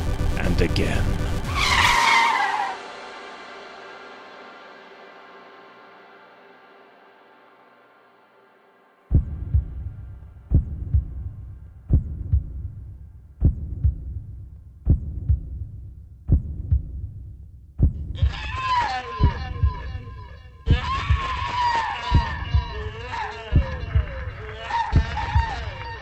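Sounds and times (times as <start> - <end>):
high gliding wail: 1.3 - 3.0
heartbeat thumps: 9.1 - 18.6, 19.2 - 25.9.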